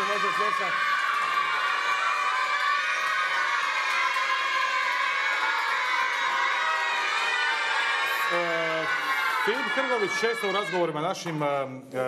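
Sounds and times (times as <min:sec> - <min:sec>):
boys cheering and shouting: 0:00.0 - 0:11.4.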